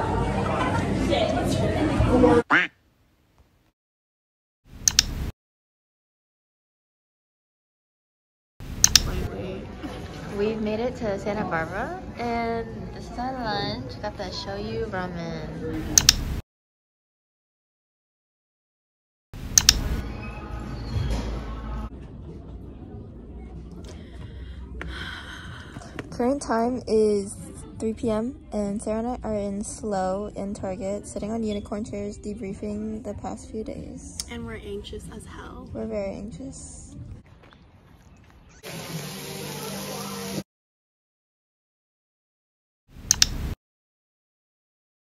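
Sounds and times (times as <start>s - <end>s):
chatter: 0.0s - 2.5s
comic squawk sound effect: 2.5s - 2.8s.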